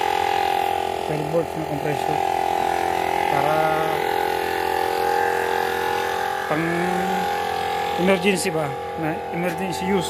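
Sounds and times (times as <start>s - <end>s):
tyre compressor buzzing: 0.0s - 10.0s.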